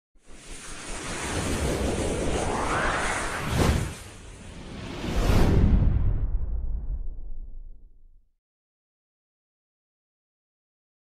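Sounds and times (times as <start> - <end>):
rushing wind-like sound effect: 0.2 - 7.9.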